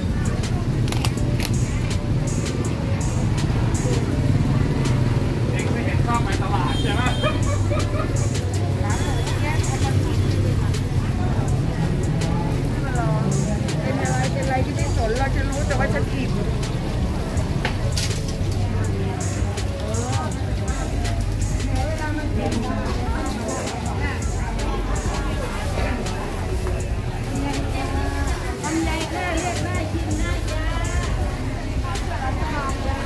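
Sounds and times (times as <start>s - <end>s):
people talking: 0.0s - 33.0s.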